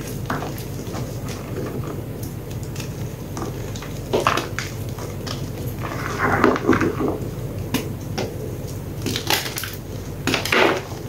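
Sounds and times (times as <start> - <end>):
chalk crunching and crumbling: 0.0 - 9.6.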